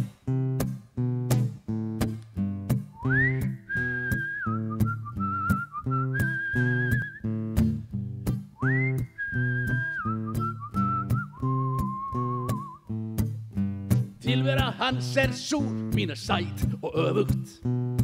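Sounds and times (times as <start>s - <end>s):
strummed acoustic guitar: 0.0s - 18.0s
whistled melody: 2.9s - 7.6s, 8.5s - 13.0s.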